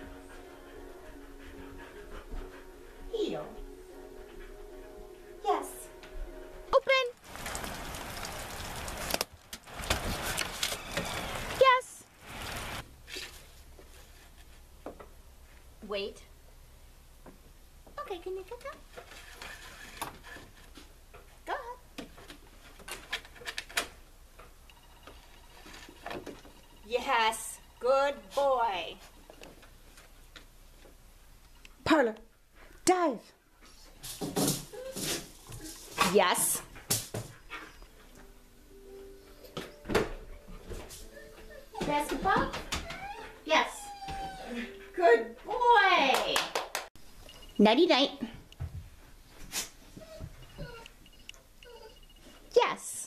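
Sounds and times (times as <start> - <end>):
rain pattering: 7.1 - 12.8.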